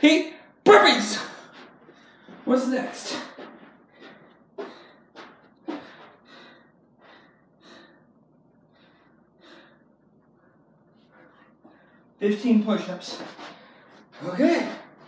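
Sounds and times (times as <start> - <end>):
man panting: 1.3 - 12.2.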